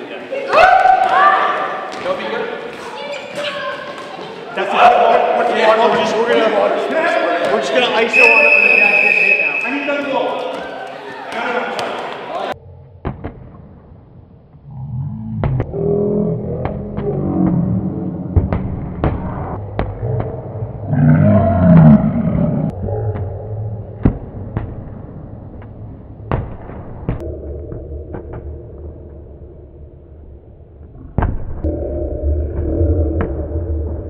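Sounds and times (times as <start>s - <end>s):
noisy gym din: 0.0s - 34.0s
dodgeballs slapping: 0.5s - 4.3s, 18.3s - 20.6s.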